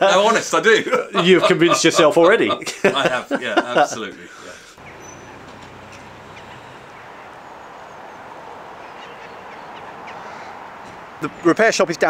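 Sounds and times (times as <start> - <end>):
faint bird calls: 4.8 - 11.4.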